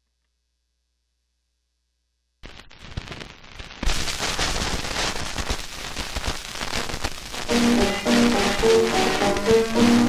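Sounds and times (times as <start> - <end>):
record crackle and hiss: 2.2 - 10.0.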